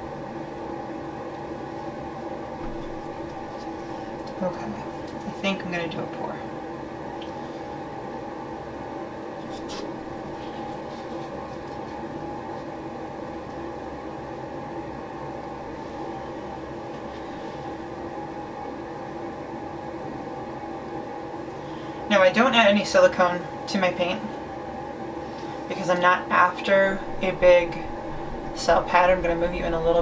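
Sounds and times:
room machinery hum: 0.0 - 30.0.

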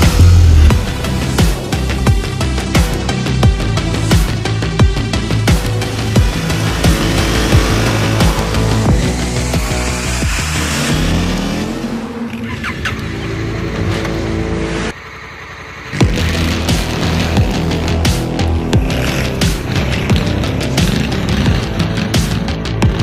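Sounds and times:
dramatic soundtrack music: 0.0 - 15.3, 15.9 - 23.0
motorcycle engine revving: 0.0 - 23.0.

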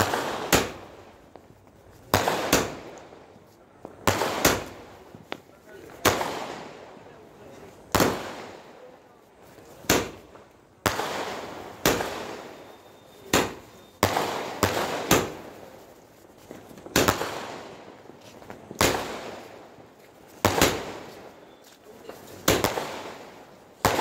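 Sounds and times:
firework bangs: 0.0 - 9.0, 9.6 - 24.0.

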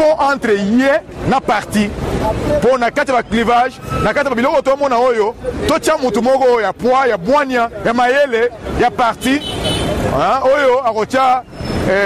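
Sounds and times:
man speaking: 0.0 - 12.0
road traffic: 0.0 - 12.0.

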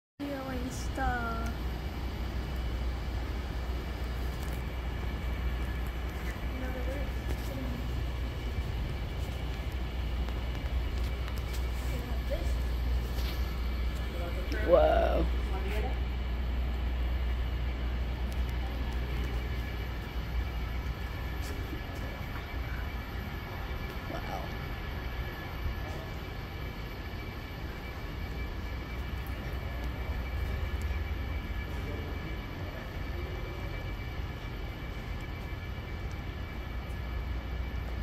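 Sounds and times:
low rumble and hum: 0.2 - 38.0.

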